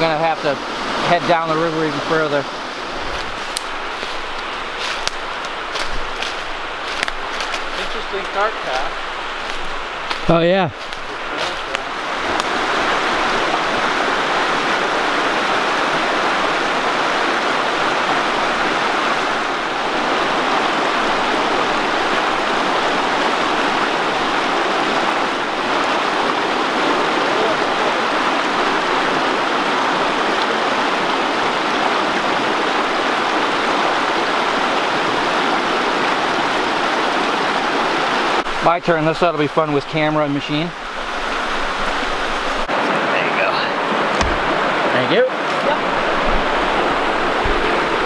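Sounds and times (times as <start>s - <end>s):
river rushing over stones: 0.0s - 48.0s.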